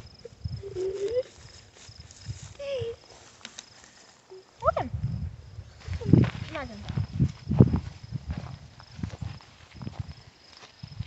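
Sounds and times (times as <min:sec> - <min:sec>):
child calling: 0:00.6 - 0:01.4, 0:02.5 - 0:03.1
footsteps through dry grass: 0:00.8 - 0:04.3, 0:05.2 - 0:11.0
twigs snapping: 0:03.2 - 0:04.0.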